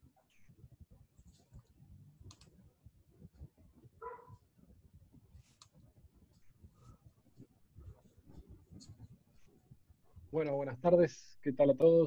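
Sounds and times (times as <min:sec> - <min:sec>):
faint clicks: 0:01.6 - 0:02.5.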